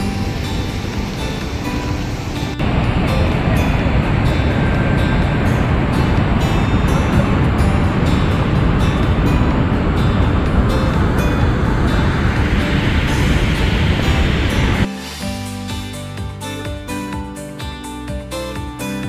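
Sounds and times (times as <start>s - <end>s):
waterfall roaring: 0.0s - 14.9s.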